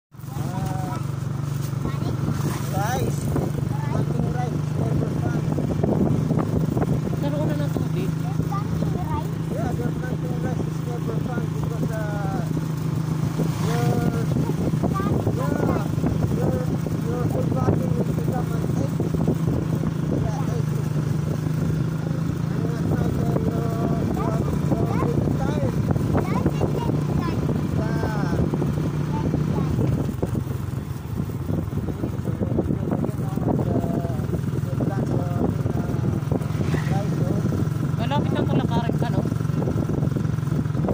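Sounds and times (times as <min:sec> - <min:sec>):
small vehicle engine humming: 0:00.1 - 0:40.9.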